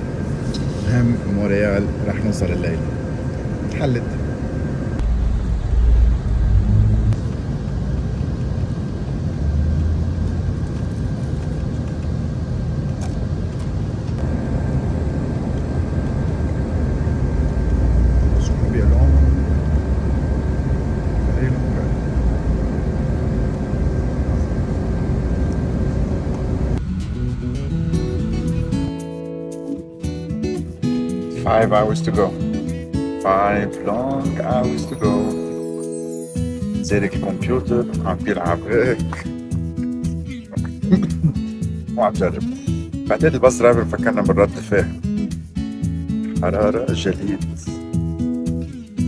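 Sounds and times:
bus engine and road rumble: 0.0s - 28.7s.

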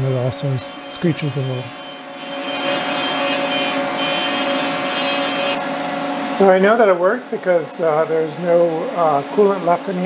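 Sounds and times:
milling machine high whine: 0.0s - 7.0s.

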